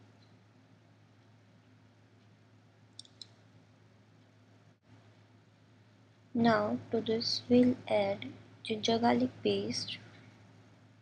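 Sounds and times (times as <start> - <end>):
low steady hum: 0.0 - 11.0
faint short clicks: 2.9 - 3.4.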